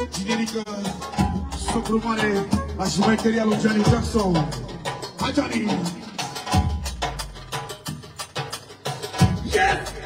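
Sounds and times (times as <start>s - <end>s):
band playing instrumental: 0.0s - 7.8s.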